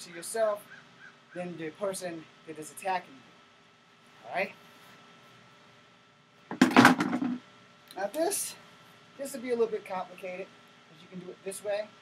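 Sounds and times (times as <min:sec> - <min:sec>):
loppers clattering rustle: 0:06.5 - 0:07.4.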